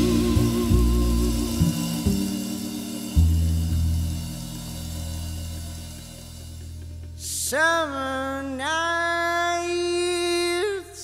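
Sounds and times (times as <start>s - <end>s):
band playing guitar bass and drums: 0.0s - 7.5s
deep ringing bass note: 0.0s - 7.6s.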